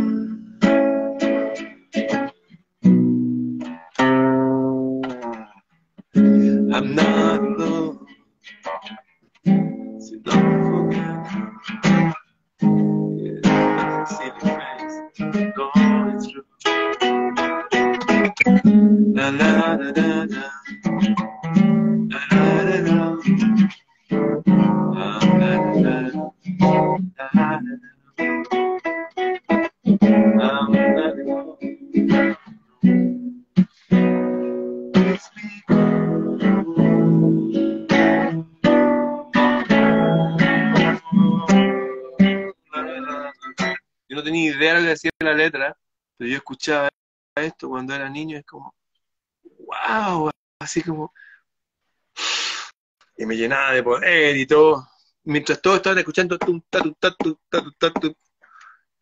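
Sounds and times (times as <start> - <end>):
classical guitar strumming chords: 0.0 - 43.8.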